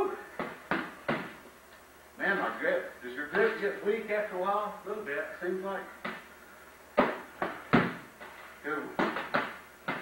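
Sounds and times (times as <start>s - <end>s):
padded sticks hitting: 0.3s - 1.5s, 6.0s - 6.3s, 7.0s - 10.0s.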